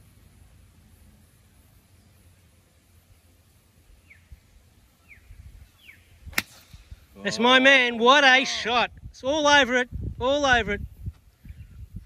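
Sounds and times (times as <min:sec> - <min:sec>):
low rumble of outdoor air: 0:00.0 - 0:12.0.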